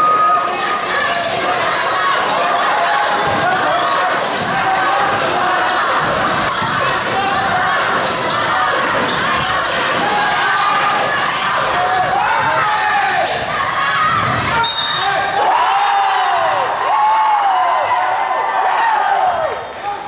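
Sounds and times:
sneakers squeaking: 0.0s - 15.4s
spectators talking and calling out: 0.0s - 20.0s.

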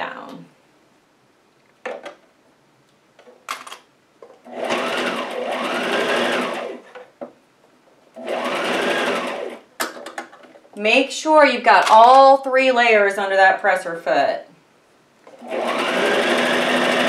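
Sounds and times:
sewing machine stitching: 4.5s - 6.9s, 8.2s - 9.6s, 15.3s - 17.0s.

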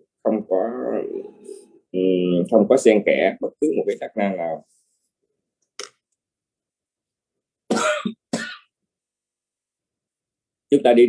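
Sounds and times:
person coughing: 7.7s - 8.7s.

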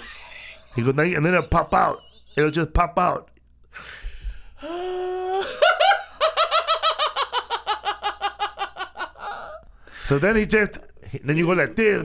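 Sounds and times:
man laughing high-pitched: 4.7s - 9.6s.

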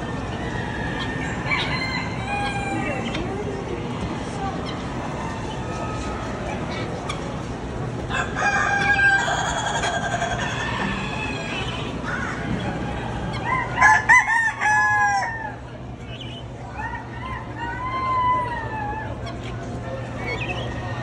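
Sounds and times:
murmur of poultry barn: 0.0s - 21.0s
rooster crowing: 0.4s - 3.0s, 8.1s - 11.7s, 13.4s - 15.6s.

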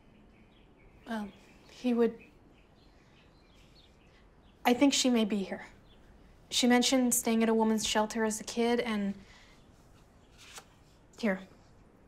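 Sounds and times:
photograph rustling: 9.8s - 11.1s.

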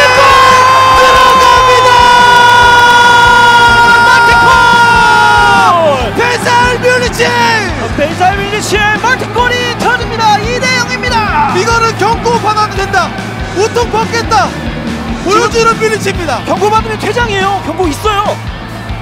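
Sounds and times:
commentator shouting: 0.0s - 14.6s, 15.2s - 18.4s.

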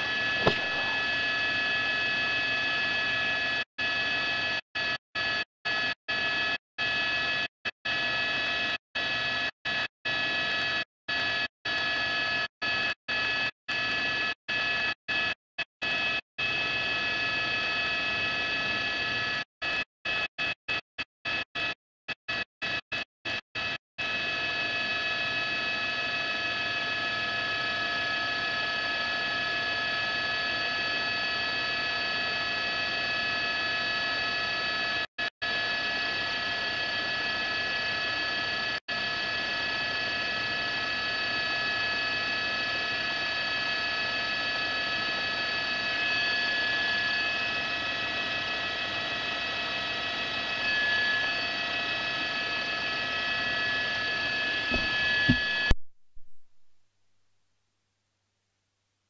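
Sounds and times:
steady hum of high tones: 0.0s - 2.8s, 53.3s - 56.4s.

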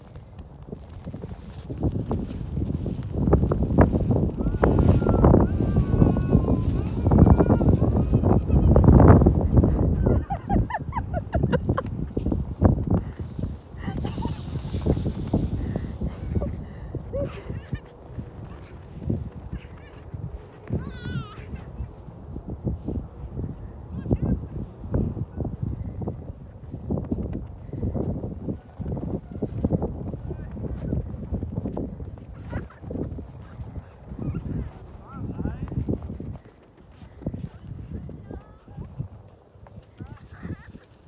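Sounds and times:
sled scraping over crusted snow: 0.0s - 10.8s, 11.5s - 16.5s, 26.9s - 41.0s
low rumbling on microphone: 0.0s - 40.6s
child's high-pitched squeal: 4.4s - 8.2s, 20.8s - 21.5s.

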